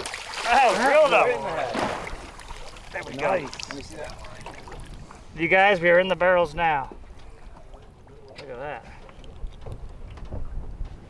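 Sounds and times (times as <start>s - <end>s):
wind rumble on microphone: 9.0s - 11.0s.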